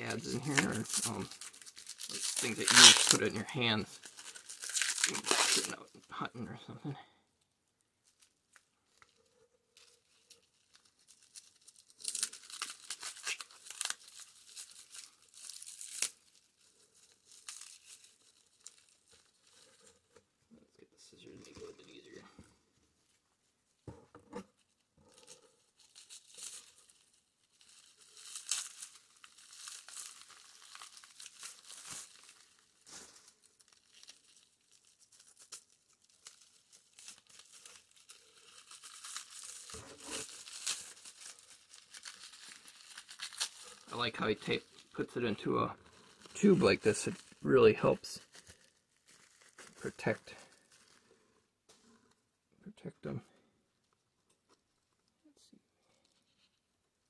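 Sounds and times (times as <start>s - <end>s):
plastic wrap crinkling and tearing: 0.0s - 7.0s, 8.0s - 20.4s, 21.1s - 23.6s, 24.4s - 52.2s, 55.9s - 57.0s.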